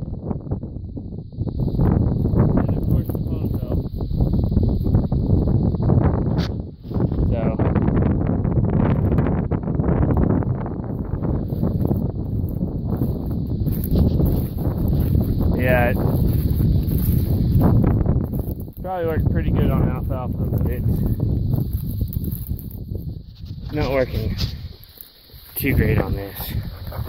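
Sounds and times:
wind rumbling on microphone: 0:00.0 - 0:27.0
muffled voice: 0:25.6 - 0:26.7.

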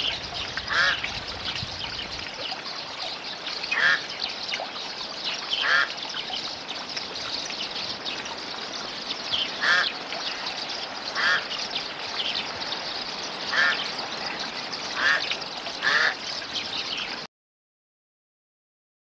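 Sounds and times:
bird calling: 0:00.0 - 0:01.0, 0:03.7 - 0:04.1, 0:05.5 - 0:06.0, 0:09.3 - 0:11.6, 0:12.2 - 0:14.0, 0:14.9 - 0:16.2.

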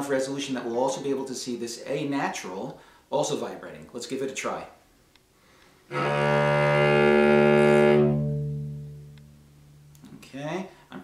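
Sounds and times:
man speaking: 0:00.0 - 0:04.8, 0:10.0 - 0:11.0
cello bowing low note: 0:05.9 - 0:10.1.

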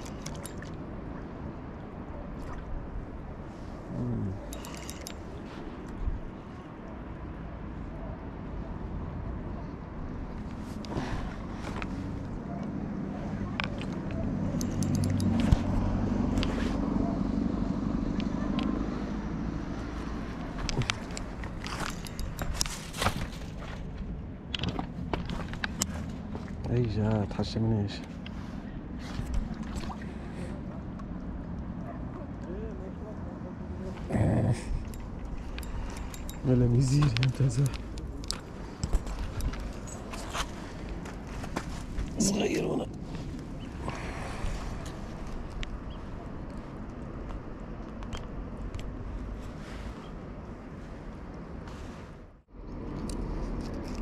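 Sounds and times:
short rough voice-like sound: 0:03.9 - 0:04.5
low engine hum: 0:06.9 - 0:54.0
footsteps on rocky ground: 0:38.4 - 0:42.2.

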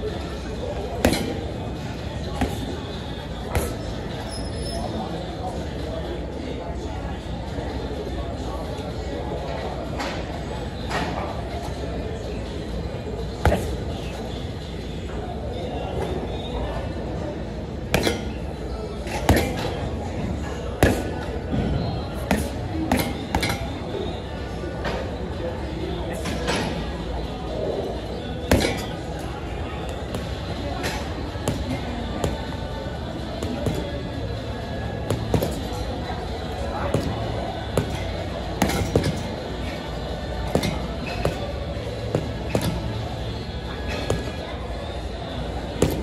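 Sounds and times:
gym background din: 0:00.0 - 0:07.0, 0:08.0 - 0:46.0.

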